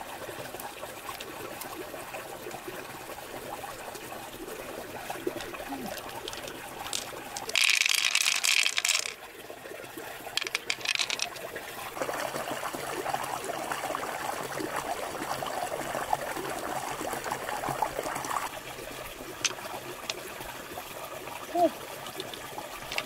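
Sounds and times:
trickling water: 0:00.0 - 0:23.0
small clicks: 0:10.4 - 0:11.4.

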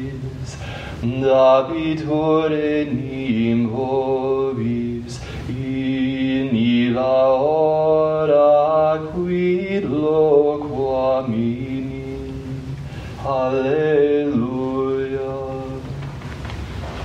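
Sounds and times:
sung liturgical chant: 0:00.0 - 0:17.0.

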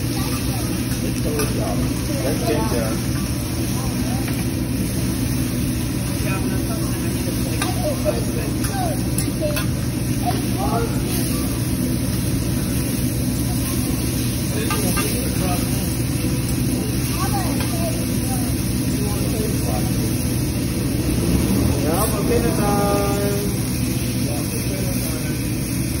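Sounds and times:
faint chatter of diners: 0:00.0 - 0:26.0
griddle rumble and hiss: 0:00.0 - 0:26.0.

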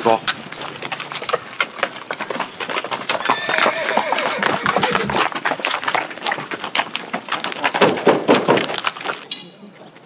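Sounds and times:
hooves clip-clopping on dirt: 0:00.0 - 0:10.0.

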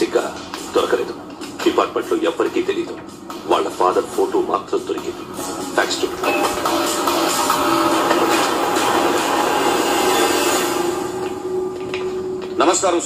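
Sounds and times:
dramatic background score: 0:00.0 - 0:13.0.

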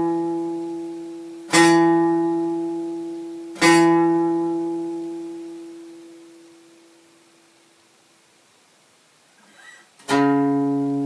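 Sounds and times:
guitar note ringing: 0:00.0 - 0:06.8, 0:09.4 - 0:11.0.

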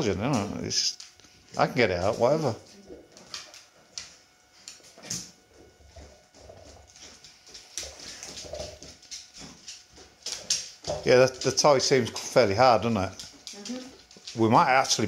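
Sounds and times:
dog chewing a toy: 0:01.0 - 0:14.4.

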